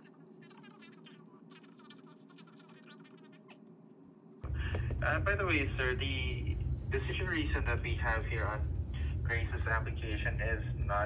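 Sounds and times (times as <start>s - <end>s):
faint high-pitched chirping: 0.0s - 3.7s
low hum from phone speaker: 0.0s - 11.0s
man talking through phone speaker: 4.5s - 11.0s.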